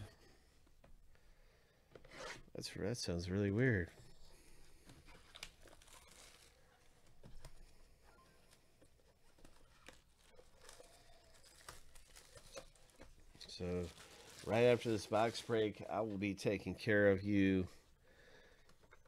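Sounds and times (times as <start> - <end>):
plastic shrink wrap crinkling: 5.1 - 7.6, 8.3 - 16.2.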